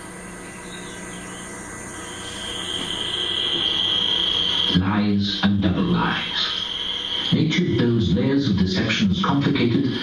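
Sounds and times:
high-pitched whine: 0.0 - 10.0
speaker hiss: 0.0 - 10.0.

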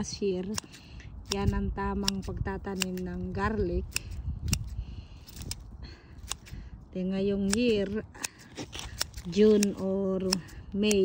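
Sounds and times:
scissors snipping leaves: 0.0 - 6.6, 7.2 - 11.0.

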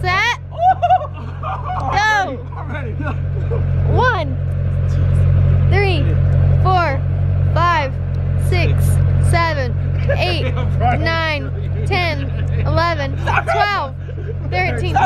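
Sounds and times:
low rumble: 0.0 - 15.0
person counting aloud: 7.6 - 15.0.

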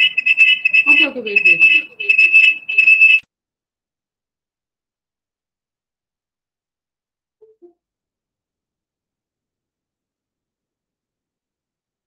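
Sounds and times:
high-pitched feedback squeal: 0.0 - 3.2.

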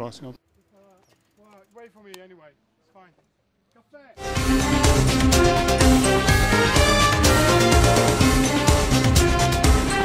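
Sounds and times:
bicycle freewheel hub buzzing: 0.4 - 1.8.

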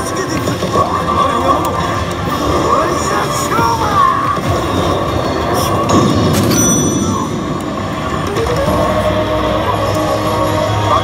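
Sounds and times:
gaming hall din: 0.0 - 11.0
slot machine effect sounds: 1.0 - 8.2.

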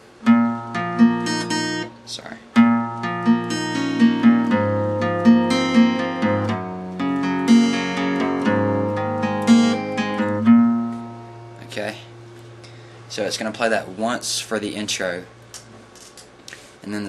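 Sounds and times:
acoustic guitar arpeggio: 0.2 - 13.1.

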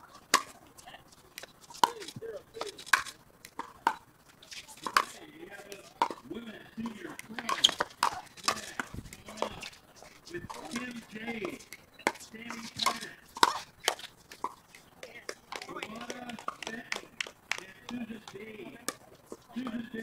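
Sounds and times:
paddles striking plastic ball: 10.5 - 19.1.

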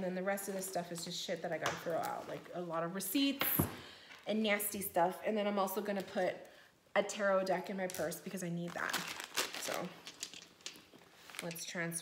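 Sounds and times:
crinkling and rustling of paper: 7.8 - 12.0.

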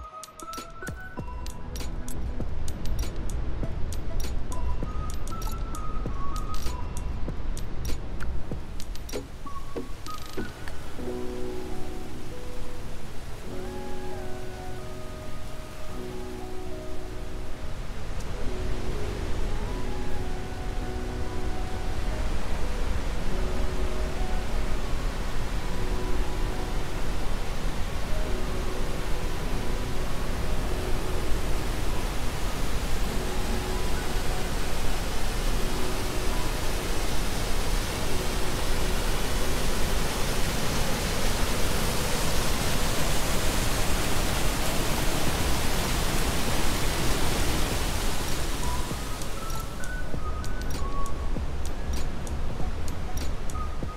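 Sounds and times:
faint melody of held notes: 0.0 - 53.9
waterfall roaring over rocks: 1.6 - 53.9.

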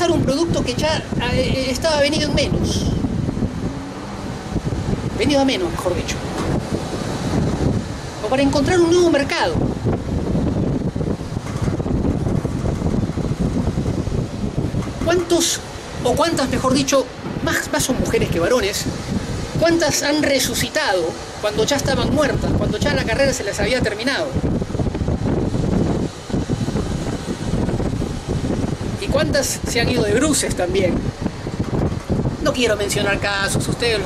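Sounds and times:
speech: 0.0 - 3.0, 5.2 - 6.2, 8.2 - 9.6, 15.0 - 18.9, 19.6 - 24.4, 29.0 - 31.0, 32.4 - 34.0
wind buffeting microphone: 0.0 - 34.0.

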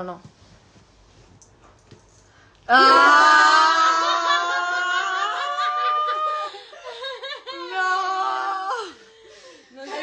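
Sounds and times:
women laughing and giggling: 3.8 - 10.0.

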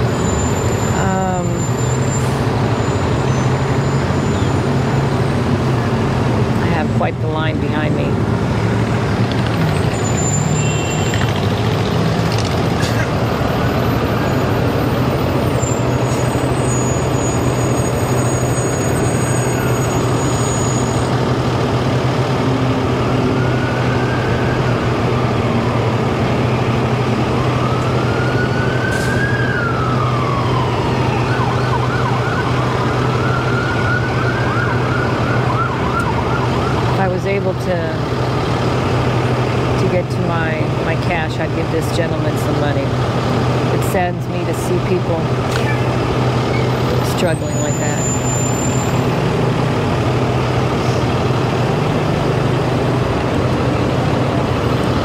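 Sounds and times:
engine hum: 0.0 - 55.0
road traffic: 0.0 - 55.0
emergency siren wailing: 8.0 - 37.2.

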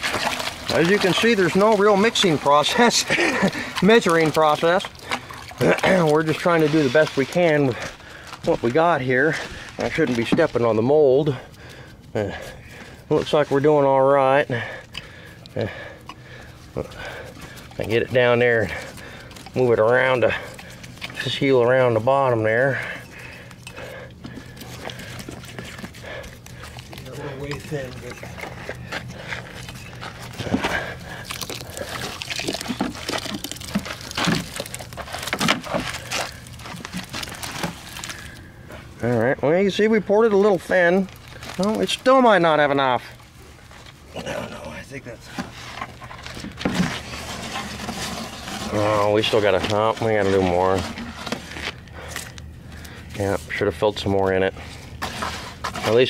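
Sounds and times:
hand smoothing wet cement: 0.0 - 11.6, 45.4 - 51.8, 54.4 - 56.0
hand working wet mud: 0.0 - 56.0
steady low hum: 0.0 - 56.0.

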